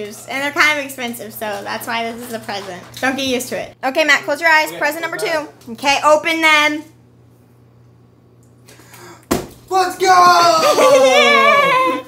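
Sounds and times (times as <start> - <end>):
steady low hum: 3.5 - 9.7.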